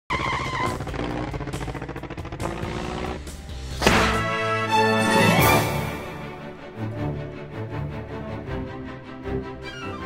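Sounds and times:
car engine sound effect: 0.1s - 4.2s.

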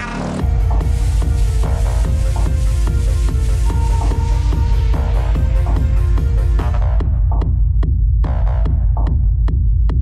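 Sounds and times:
electronic dance music: 0.0s - 10.0s
heavy bass: 0.0s - 10.0s.

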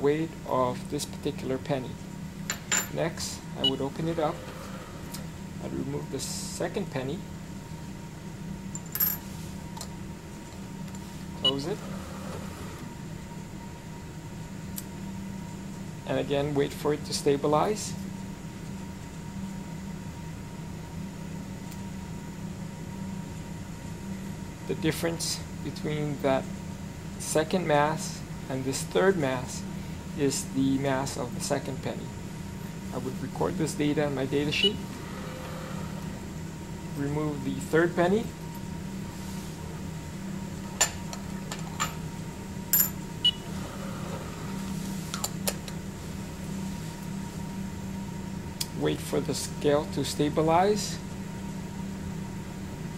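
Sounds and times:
steady low hum: 0.0s - 52.9s.

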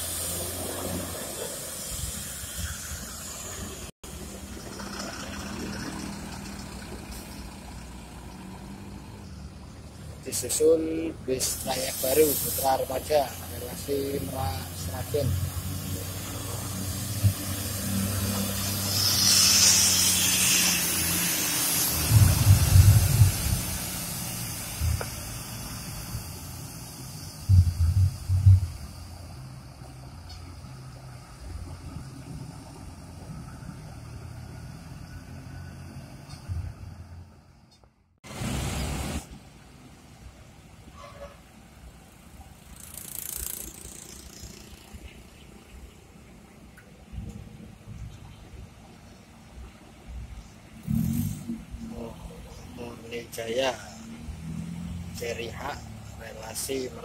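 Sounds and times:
air hissing: 0.0s - 3.9s, 11.4s - 31.2s
bus diesel engine: 0.0s - 57.0s
heavy low rumbles: 21.9s - 26.3s, 27.1s - 29.2s.

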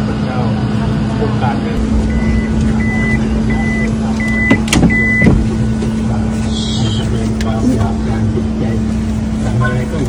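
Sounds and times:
car warning chime beeping: 1.8s - 5.8s.

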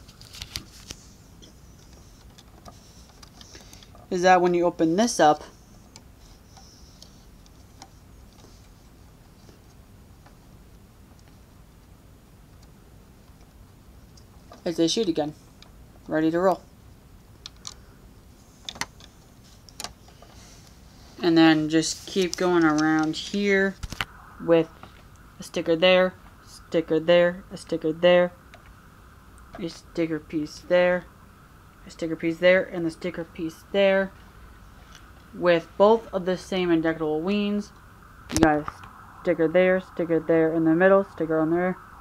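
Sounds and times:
low steady hiss: 0.0s - 42.0s.

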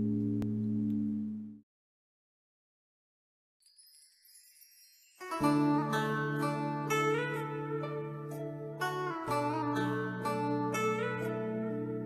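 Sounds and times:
faint high chime tones: 3.6s - 5.5s.

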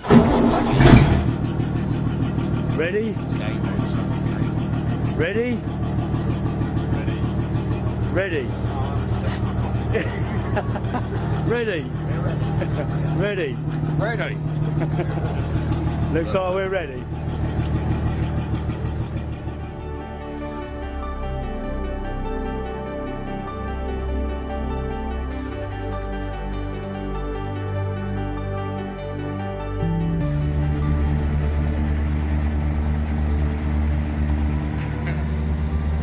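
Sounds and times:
boat engine starting and idling: 0.0s - 36.0s
music: 2.7s - 4.6s, 5.2s - 5.6s, 8.1s - 9.2s, 9.9s - 36.0s.

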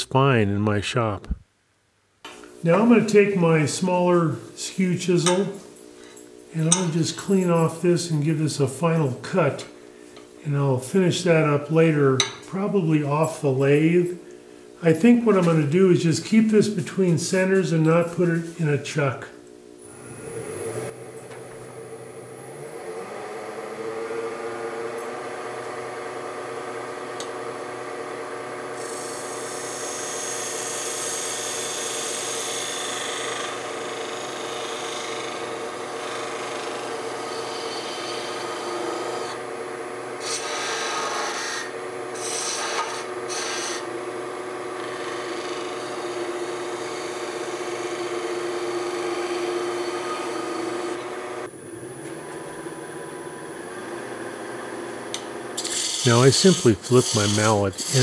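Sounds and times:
wood lathe motor hum: 19.8s - 58.0s
chisel scraping spinning wood: 28.8s - 39.4s, 44.8s - 51.2s, 55.6s - 58.0s.

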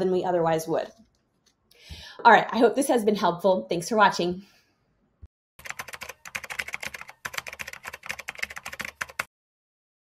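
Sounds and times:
computer keyboard typing: 5.6s - 9.3s.

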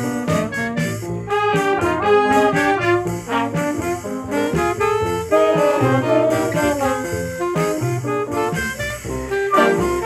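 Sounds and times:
jazz ensemble playing: 0.0s - 10.0s
trumpets and trombones: 0.0s - 10.0s.

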